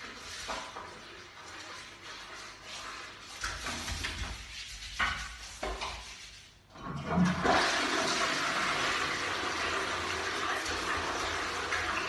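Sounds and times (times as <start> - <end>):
toilet flushing: 6.7 - 12.0.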